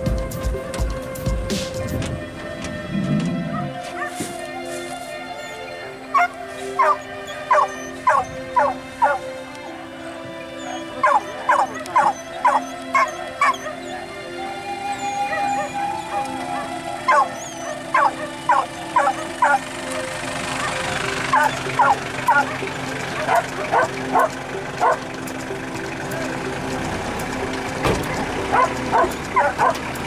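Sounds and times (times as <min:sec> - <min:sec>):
background music: 0:00.0 - 0:30.0
dogs barking and yipping: 0:01.8 - 0:25.4, 0:26.1 - 0:30.0.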